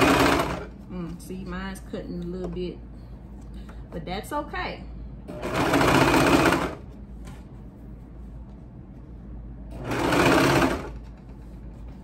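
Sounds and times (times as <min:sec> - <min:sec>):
overlock machine stitching: 0:00.0 - 0:00.7, 0:05.3 - 0:06.8, 0:09.7 - 0:11.1.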